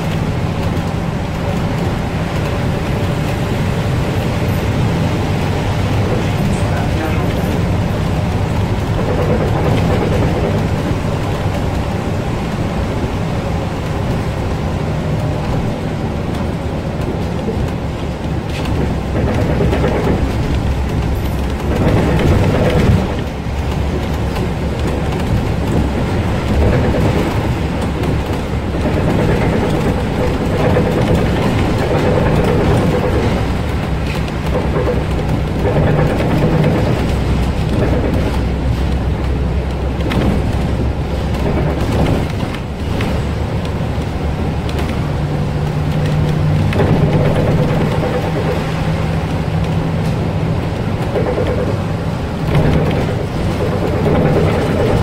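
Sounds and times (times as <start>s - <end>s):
bus diesel engine running: 0.0s - 55.0s
tyre noise on wet road: 0.0s - 55.0s.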